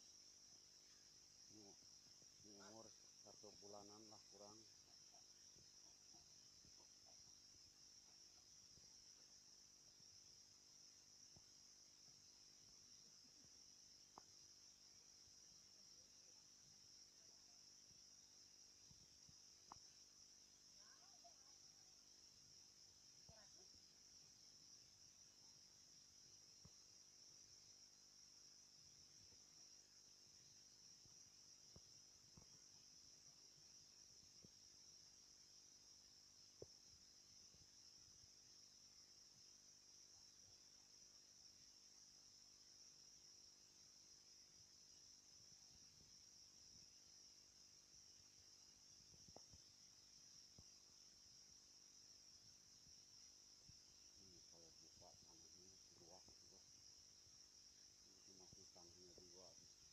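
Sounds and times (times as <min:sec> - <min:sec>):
crickets chirping: 0:00.0 - 0:59.9.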